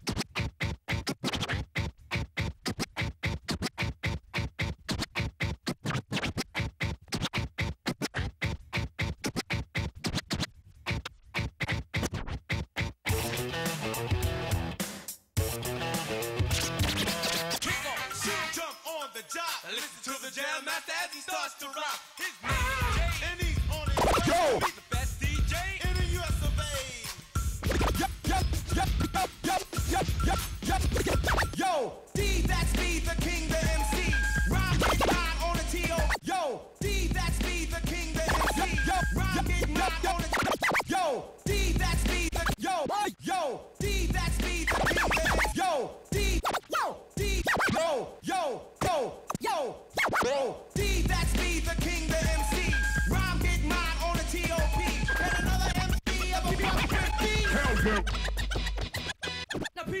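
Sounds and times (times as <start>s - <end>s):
record scratching on turntable: 0.0s - 13.1s, 16.4s - 18.6s, 22.4s - 25.3s, 25.9s - 31.6s, 32.3s - 36.2s, 37.1s - 41.0s, 41.8s - 43.2s, 44.0s - 45.6s, 46.2s - 47.9s, 49.3s - 52.0s, 52.6s - 60.0s
hip-hop beat: 6.6s - 60.0s.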